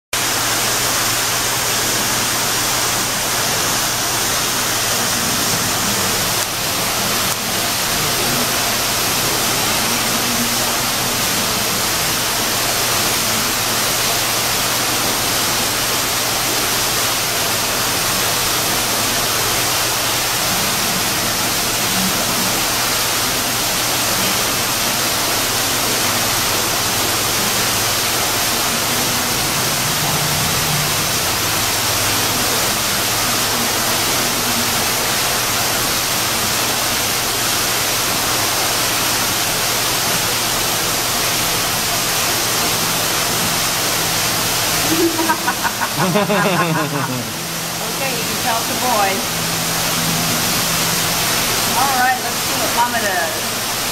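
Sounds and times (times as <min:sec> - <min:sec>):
loud rushing noise: 0:28.9 - 0:32.4.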